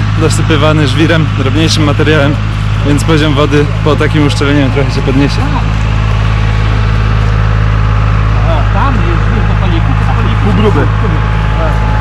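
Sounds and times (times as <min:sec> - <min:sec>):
people talking: 0:00.0 - 0:05.8, 0:08.3 - 0:12.0
diesel engine idling: 0:00.0 - 0:12.0.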